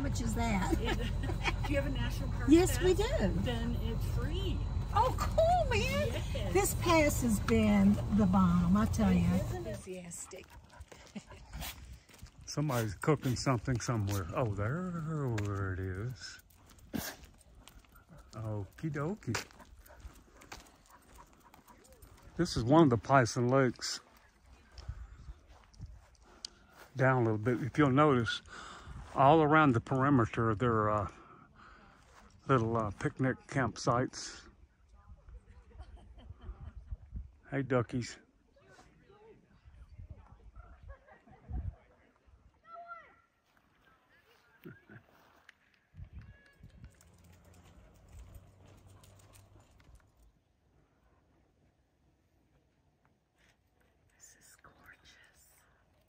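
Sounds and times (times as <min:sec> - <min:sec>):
low steady hum: 0:00.0 - 0:09.9.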